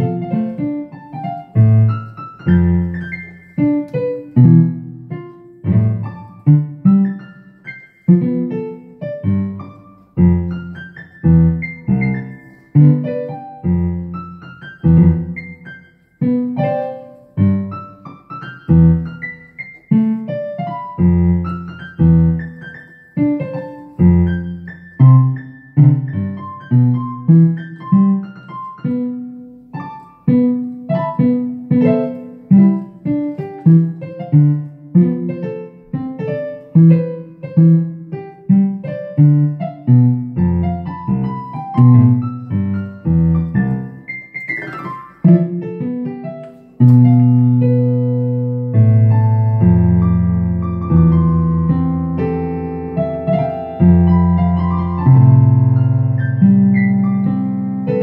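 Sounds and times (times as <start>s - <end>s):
synthesizer piano chords and melody: 0.0s - 58.0s.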